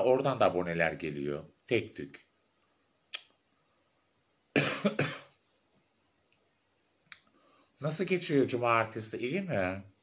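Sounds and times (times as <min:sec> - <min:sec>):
person coughing: 0:04.6 - 0:05.4.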